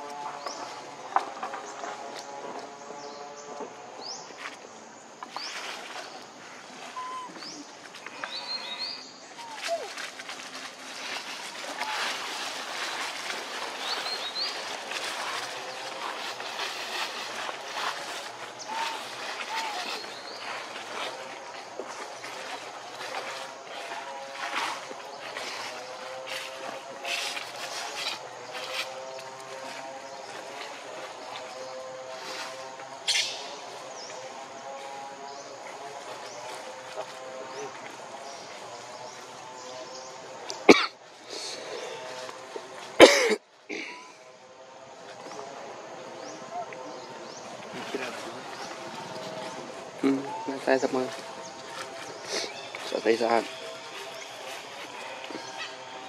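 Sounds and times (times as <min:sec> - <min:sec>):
dry leaves crackling and rustling: 0:09.3 - 0:43.8, 0:47.5 - 0:56.0.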